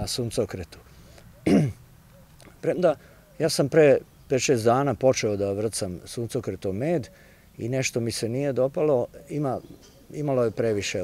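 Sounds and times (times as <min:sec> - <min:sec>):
man speaking: 0:00.0 - 0:00.9, 0:02.6 - 0:09.6, 0:10.2 - 0:11.0
man clearing throat: 0:01.4 - 0:01.8.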